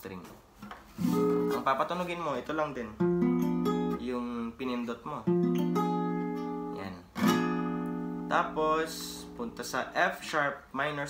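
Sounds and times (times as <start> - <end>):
acoustic guitar chord strummed: 1.0 - 1.7, 3.0 - 4.0, 5.3 - 9.9.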